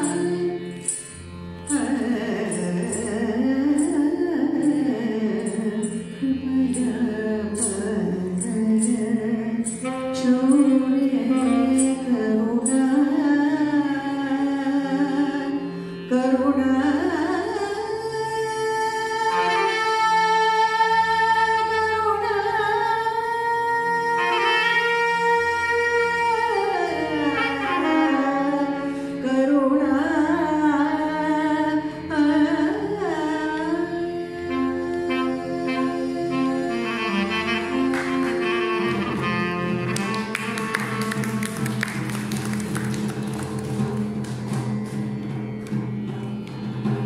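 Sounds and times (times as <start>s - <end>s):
steady held drone note: 0.0s - 18.6s
woman singing slow melody: 1.7s - 28.2s, 29.2s - 39.4s
saxophone playing: 9.6s - 12.9s, 21.6s - 29.0s, 34.0s - 43.7s.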